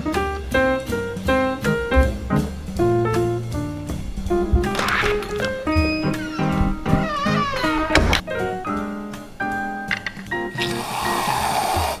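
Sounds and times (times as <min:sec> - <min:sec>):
background music with held notes: 0:00.0 - 0:11.9
whipped cream aerosol hissing: 0:10.6 - 0:12.0.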